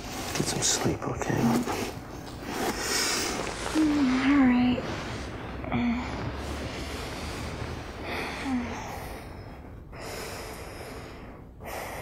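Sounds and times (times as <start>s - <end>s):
person breathing slowly: 5.1s - 12.0s.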